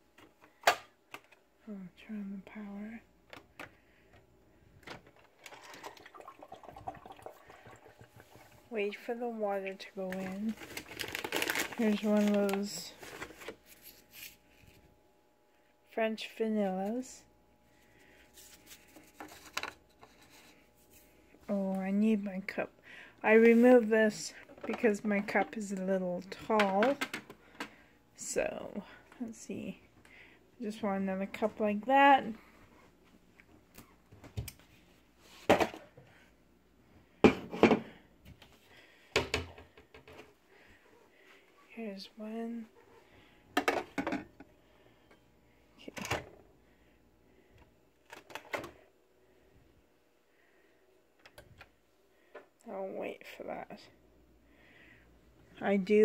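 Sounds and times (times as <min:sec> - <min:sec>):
foil bag rustling: 0:09.7 - 0:14.7.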